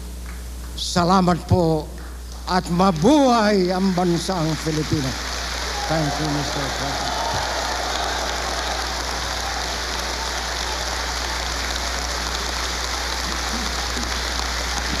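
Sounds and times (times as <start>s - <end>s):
large crowd applauding: 2.6s - 15.0s.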